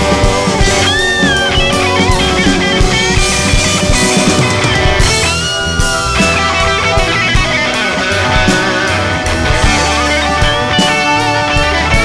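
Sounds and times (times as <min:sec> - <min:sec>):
bass guitar: 0:00.0 - 0:12.0
drums: 0:00.0 - 0:12.0
electric guitar lead: 0:00.0 - 0:12.0.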